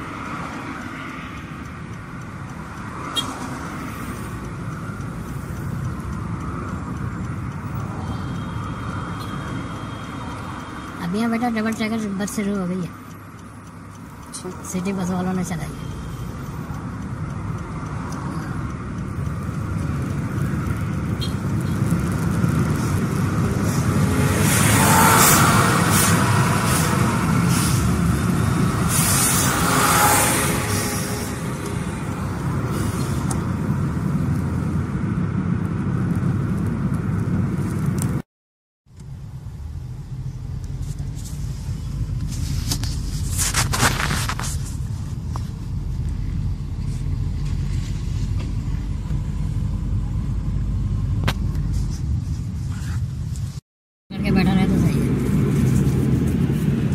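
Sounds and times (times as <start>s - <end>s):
car road and engine noise: 0.0s - 56.9s.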